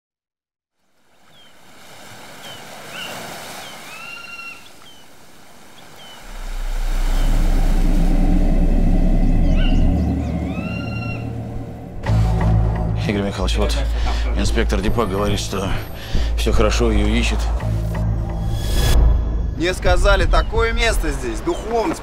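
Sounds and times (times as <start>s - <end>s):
soft ambient wash: 1.0s - 21.5s
deep bass drone: 6.2s - 21.0s.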